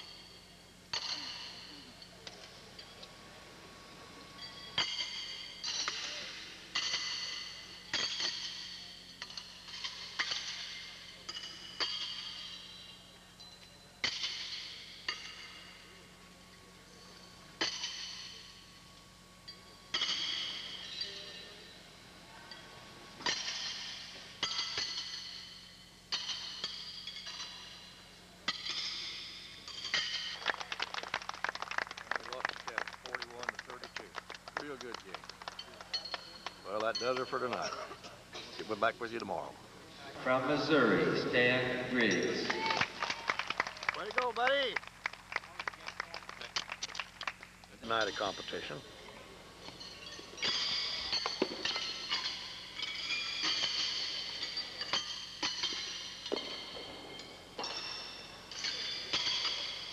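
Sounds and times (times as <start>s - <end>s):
horseshoes clanging on steel stakes: 0.0s - 3.1s, 4.4s - 15.9s, 16.9s - 18.7s, 19.5s - 21.8s, 22.5s - 30.6s, 47.9s - 59.9s
people clapping: 29.9s - 37.8s, 42.0s - 48.6s.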